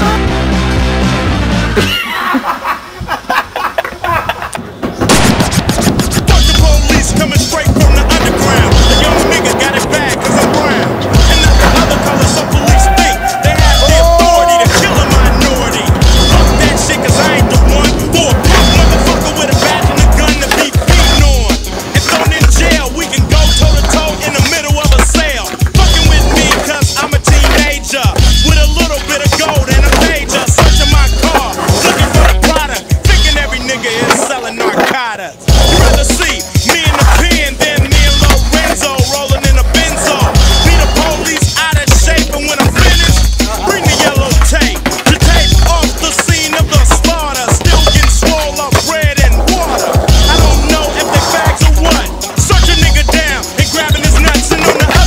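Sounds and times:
skateboard wheels rolling: 0:03.0 - 0:55.0
skateboards clacking and slapping: 0:03.0 - 0:55.0
music with heavy beat: 0:05.0 - 0:34.2, 0:35.5 - 0:55.0.

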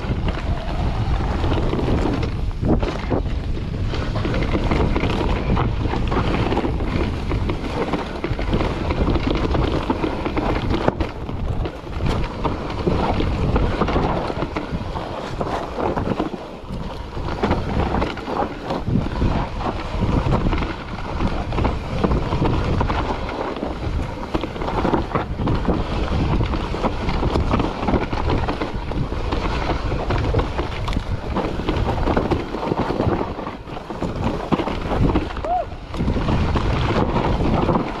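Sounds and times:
bike knocking and rattling: 0:00.0 - 0:38.0
bike tyres rolling on dirt: 0:00.0 - 0:38.0
wind buffeting microphone: 0:00.0 - 0:38.0.

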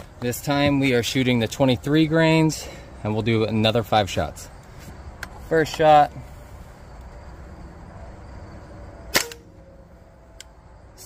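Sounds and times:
air rifle shot: 0:09.1 - 0:09.4.

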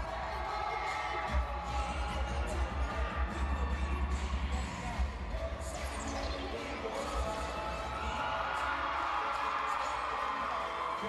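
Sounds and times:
loud dance music with pulsing bass: 0:00.0 - 0:11.0.

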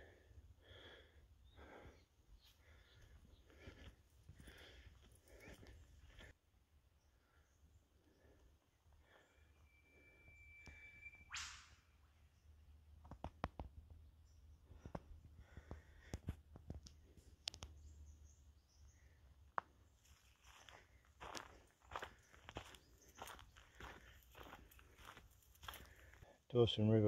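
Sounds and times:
thin steady whistle: 0:09.3 - 0:12.0
brief sharp sound: 0:11.2 - 0:11.9.

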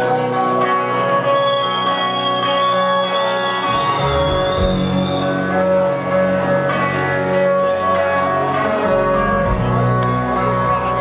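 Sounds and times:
electric guitar: 0:00.0 - 0:11.0
rock band chords: 0:00.0 - 0:11.0
electric bass notes: 0:03.6 - 0:11.0.

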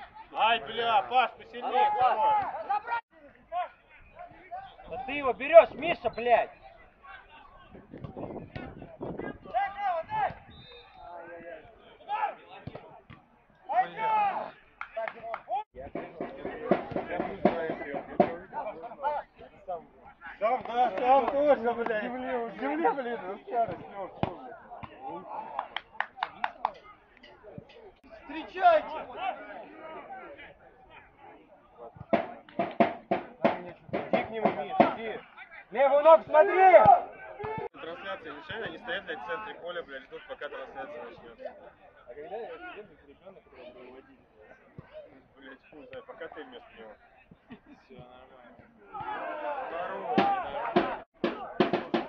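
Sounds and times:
men calling out: 0:00.0 - 0:06.0, 0:48.7 - 0:52.0.

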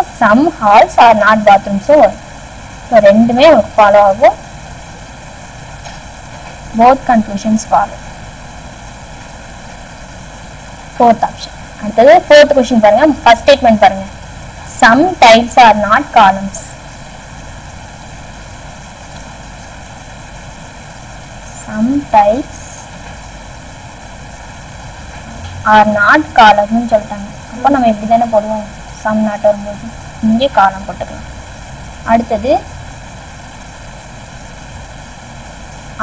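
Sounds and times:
woman speaking: 0:00.0 - 0:02.2, 0:02.9 - 0:04.4, 0:06.8 - 0:08.0, 0:11.0 - 0:14.1, 0:14.7 - 0:16.8, 0:21.5 - 0:22.9, 0:25.7 - 0:31.3, 0:32.0 - 0:32.7
recording hiss and hum: 0:00.0 - 0:36.0.

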